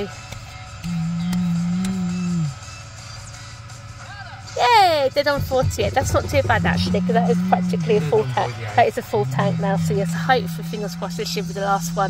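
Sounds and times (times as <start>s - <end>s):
person humming low note: 0.8s - 2.6s, 5.4s - 12.0s.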